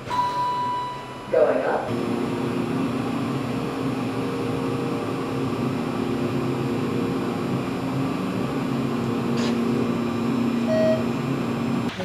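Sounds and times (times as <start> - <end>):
low held tones: 0.0 - 11.9
elevator mechanical hum: 0.0 - 12.0.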